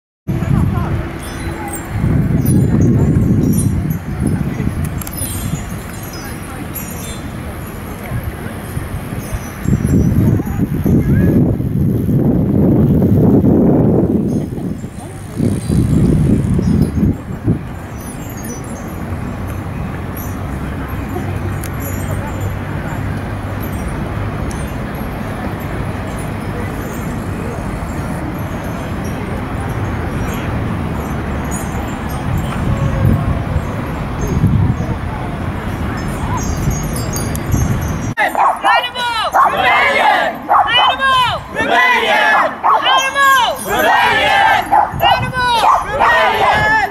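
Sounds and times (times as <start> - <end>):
outdoor background rumble: 0.3 - 38.6.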